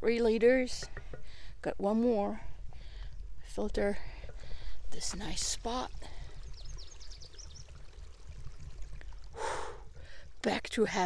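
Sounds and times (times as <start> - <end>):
water trickling in a stream: 0.7 - 11.0
bird chirping: 5.2 - 8.6
breathy exhale: 9.3 - 10.3.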